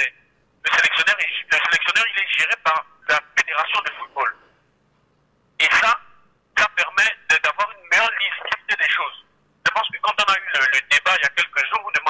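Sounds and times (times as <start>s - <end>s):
person talking over telephone: 0.0s - 4.5s, 5.6s - 12.0s.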